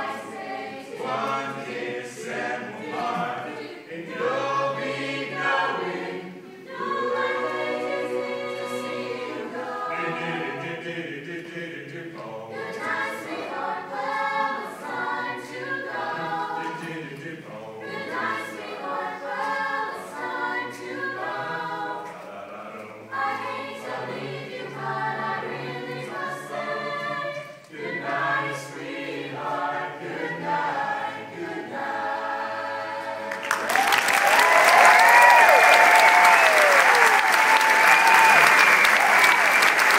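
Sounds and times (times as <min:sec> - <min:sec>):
a cappella chorus singing: 0:00.0 - 0:39.9
audience applause and cheering: 0:33.2 - 0:39.9.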